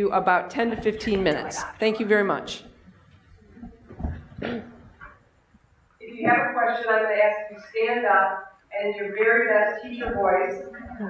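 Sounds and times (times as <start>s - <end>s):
woman clearing her throat: 4.4s - 4.9s.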